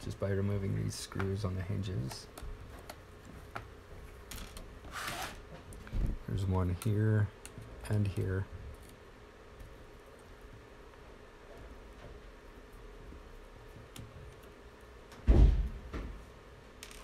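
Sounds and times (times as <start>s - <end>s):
loud dull thump: 15.2s - 16.2s.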